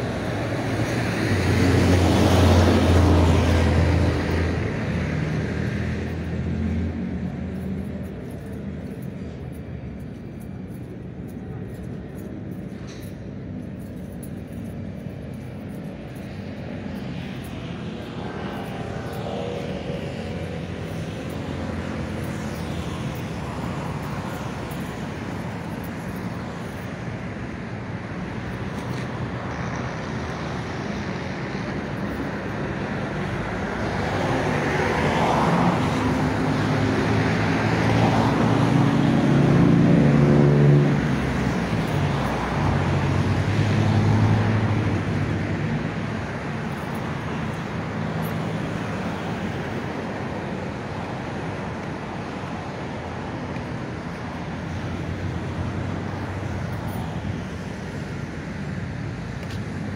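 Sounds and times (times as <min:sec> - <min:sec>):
passing vehicle engines: 0:00.0 - 0:59.9
road noise rush: 0:00.0 - 0:59.9.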